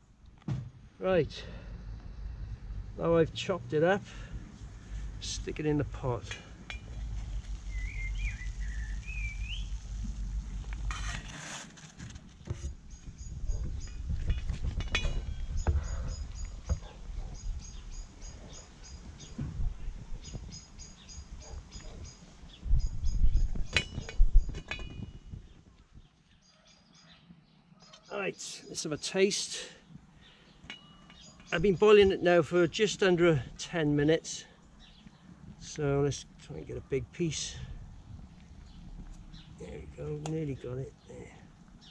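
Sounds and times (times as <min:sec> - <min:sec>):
low uneven rumble: 0:01.2 - 0:11.6
bird singing high notes: 0:07.7 - 0:09.8.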